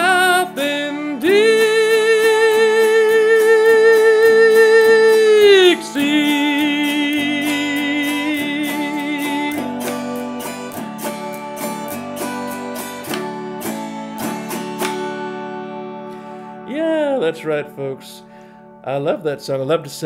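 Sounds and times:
autoharp strumming: 0.0 - 20.0.

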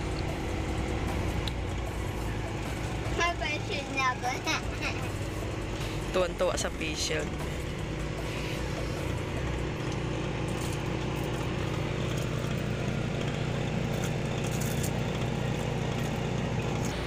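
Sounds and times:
car engine and road hum: 0.0 - 17.0.

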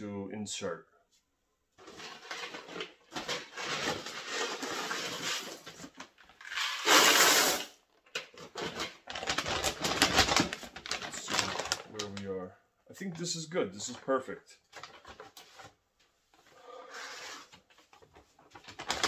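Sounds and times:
mylar bag crinkling: 8.7 - 12.2.

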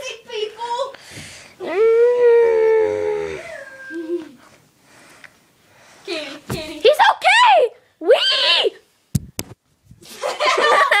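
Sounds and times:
child squealing: 1.6 - 4.4.

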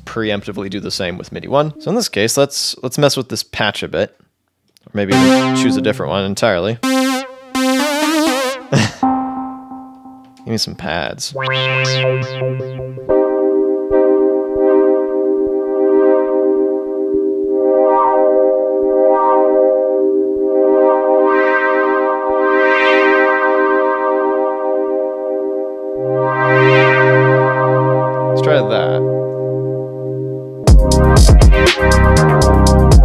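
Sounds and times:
low synth bass note: 5.1 - 10.2, 11.4 - 31.2
synthesizer pad chord: 5.1 - 10.5, 11.4 - 30.6.

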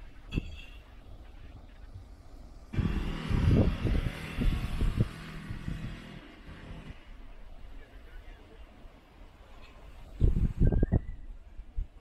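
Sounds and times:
wind buffeting microphone: 0.0 - 7.7, 9.7 - 12.0
street traffic: 0.0 - 12.0.

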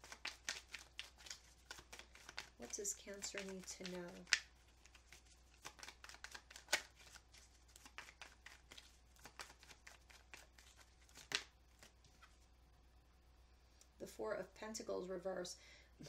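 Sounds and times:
cards being shuffled: 0.0 - 12.4.

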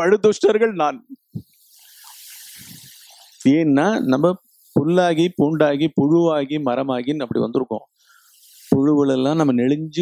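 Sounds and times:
man hissing breath: 1.3 - 3.4, 8.0 - 8.8.

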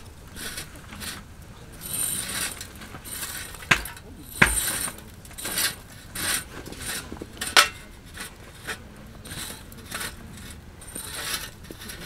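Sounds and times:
metal tongs scraping metal: 3.3 - 6.4, 7.5 - 7.9.

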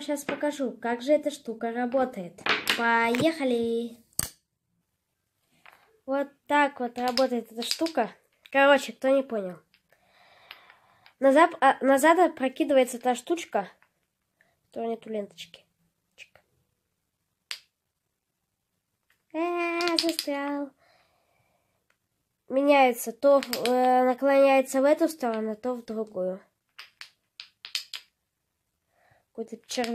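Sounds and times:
wooden toy blocks clacking: 0.2 - 0.6, 1.9 - 3.4, 5.6 - 6.0, 6.9 - 8.6, 9.6 - 11.2, 17.5 - 17.7, 19.0 - 20.4, 23.2 - 24.0, 25.0 - 25.5, 26.7 - 28.2, 29.5 - 29.9
wooden toy clack: 2.4 - 3.3, 7.0 - 8.0, 19.7 - 20.3, 23.4 - 23.9, 26.7 - 28.2.

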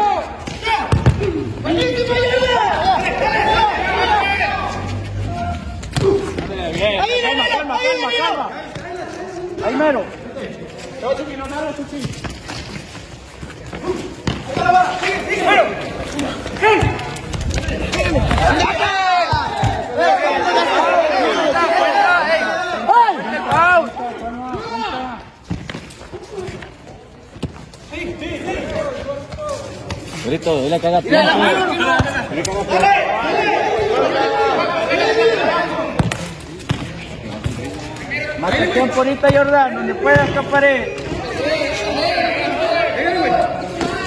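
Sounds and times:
men shouting: 0.0 - 8.5, 17.9 - 25.2, 31.1 - 35.9
ball being kicked: 0.5 - 1.4.

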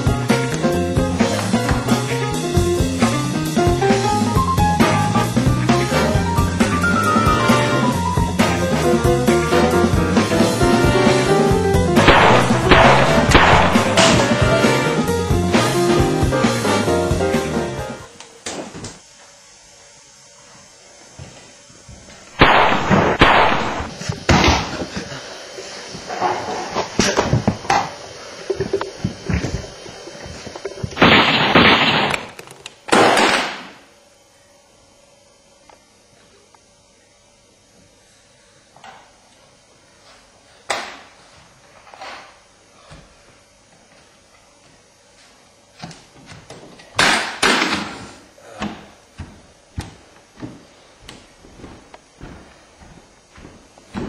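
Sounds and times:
gunshot: 12.0 - 14.2, 22.4 - 24.6, 31.0 - 32.3, 32.9 - 33.8
loud sharp bangs: 12.0 - 14.4, 22.4 - 23.9.

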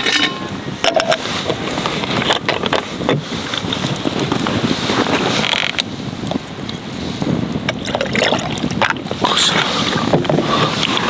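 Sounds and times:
campfire crackling: 0.0 - 11.0.

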